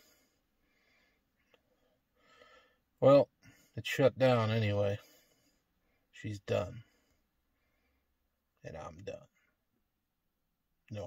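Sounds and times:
faint breath: 0:00.0 - 0:03.8, 0:05.0 - 0:06.1, 0:06.8 - 0:08.2.

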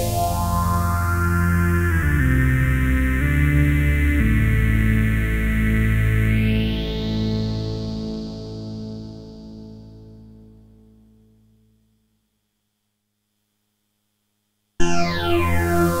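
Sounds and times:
synthesizer notes with phaser: 0:00.0 - 0:10.6, 0:14.8 - 0:16.0.

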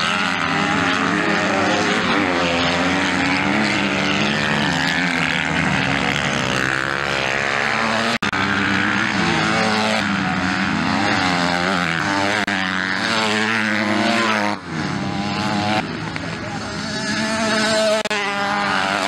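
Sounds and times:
dirt bike engines revving: 0:00.0 - 0:19.0.

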